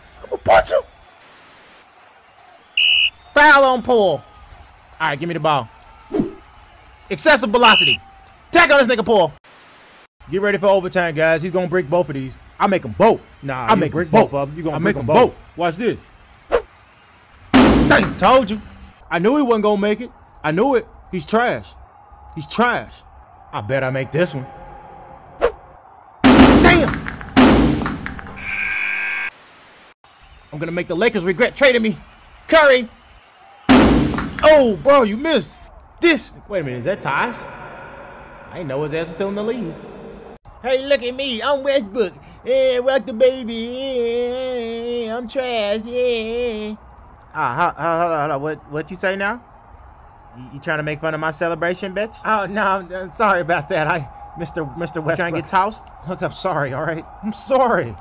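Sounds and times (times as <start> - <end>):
referee's whistle blast: 2.7 - 3.8, 7.6 - 8.1, 28.4 - 29.3
game-clock buzzer horn: 7.7 - 8.0
loud thump-like burst: 17.6 - 18.2, 26.2 - 28.2, 33.7 - 34.4.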